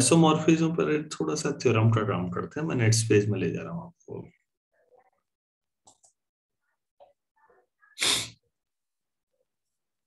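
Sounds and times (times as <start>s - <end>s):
person sneezing: 8.0s - 8.4s.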